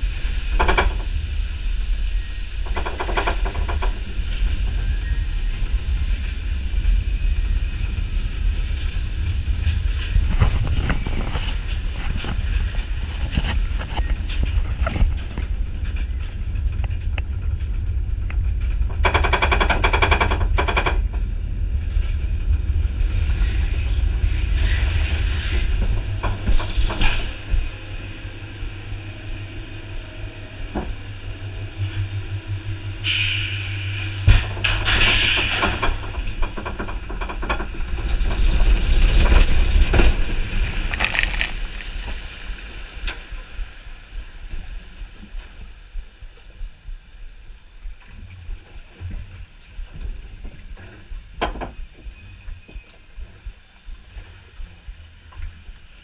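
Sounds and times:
log flume boat rumble: 0:00.0 - 0:56.0.

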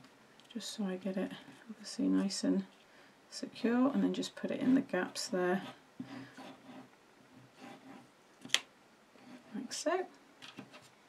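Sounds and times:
faint handling sounds: 0:00.0 - 0:03.0.

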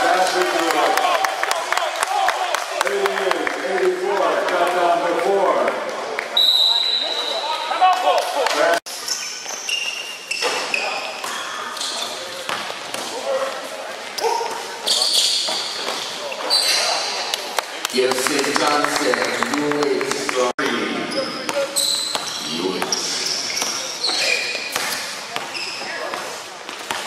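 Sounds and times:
sneaker squeaks: 0:06.4 - 0:07.7, 0:08.9 - 0:12.7, 0:14.2 - 0:17.2, 0:21.1 - 0:27.0
players calling out: 0:17.9 - 0:24.8.

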